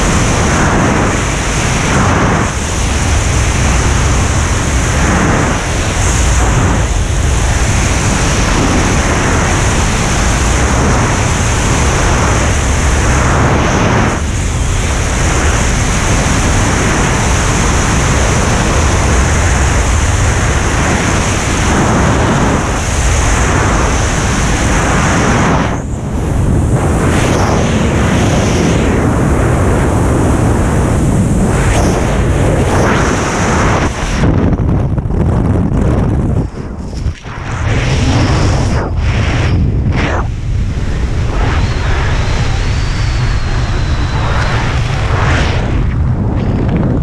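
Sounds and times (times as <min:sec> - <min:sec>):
wind rushing over microphone: 0:00.0 - 0:47.0.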